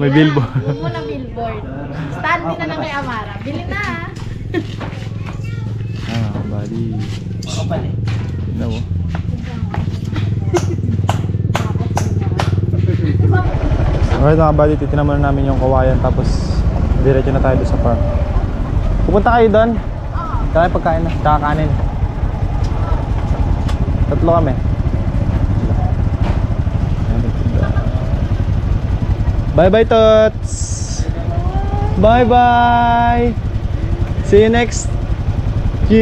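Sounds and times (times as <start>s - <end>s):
motorcycle engine rumble: 0.0s - 36.0s
small engine idling: 0.0s - 36.0s.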